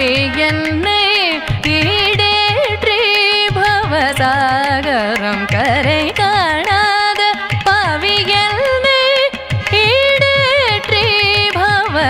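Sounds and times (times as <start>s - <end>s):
woman singing with ornamentation: 0.0s - 12.0s.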